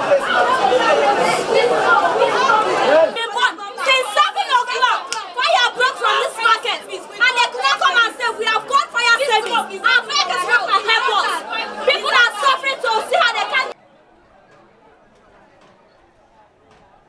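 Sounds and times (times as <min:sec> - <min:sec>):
women shouting and talking: 0:00.0 - 0:17.0.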